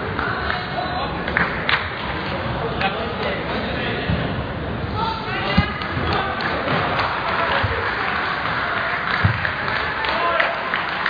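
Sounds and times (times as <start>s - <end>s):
many voices talking: 0.0s - 10.7s.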